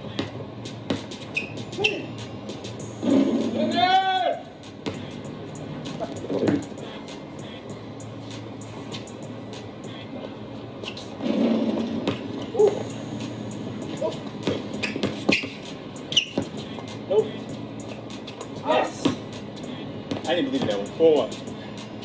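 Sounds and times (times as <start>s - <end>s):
basketball dribbling on outdoor court: 0.0s - 2.6s, 4.7s - 5.2s, 5.9s - 7.0s, 10.8s - 12.9s, 13.8s - 16.8s, 17.9s - 21.0s
background music: 0.0s - 22.0s
players' voices: 3.3s - 5.2s, 16.5s - 17.7s, 18.4s - 21.8s.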